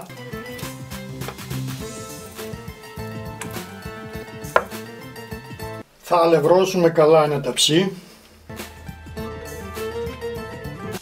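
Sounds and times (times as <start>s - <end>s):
quiet guitar music: 0.1s - 5.8s
wooden spoon knocking glass bowl: 4.5s - 4.8s.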